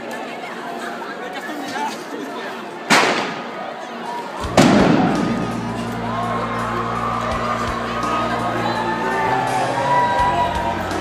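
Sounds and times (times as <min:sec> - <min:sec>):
young people chattering: 0:00.0 - 0:11.0
firecracker bangs: 0:02.9 - 0:03.5, 0:04.5 - 0:05.8
music: 0:04.2 - 0:11.0.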